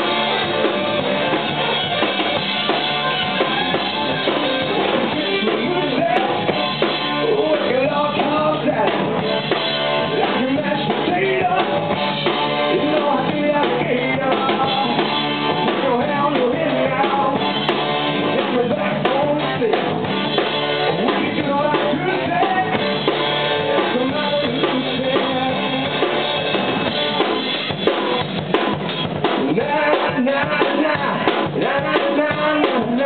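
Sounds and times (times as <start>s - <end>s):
drum kit beat: 0.0s - 33.0s
rock band playing: 0.0s - 33.0s.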